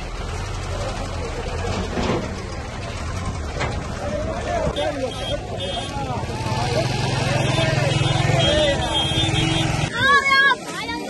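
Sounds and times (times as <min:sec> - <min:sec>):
crowd voices talking: 0:00.0 - 0:11.0
motorcycle engine running: 0:02.4 - 0:09.9.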